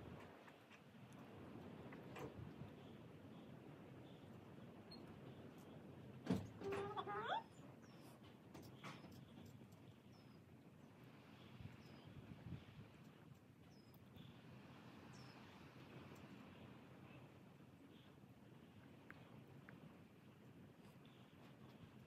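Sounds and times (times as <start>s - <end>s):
small birds chirping faintly: 0.0s - 22.0s.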